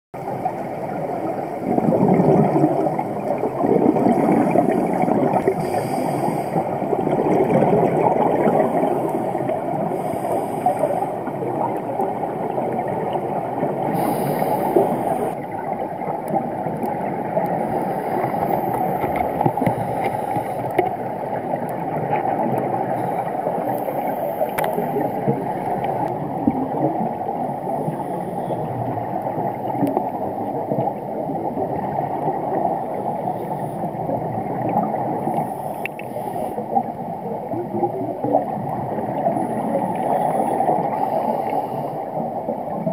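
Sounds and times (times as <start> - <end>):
regulator bubbles gurgling: 0.2 - 42.9
underwater water rush: 0.2 - 42.9.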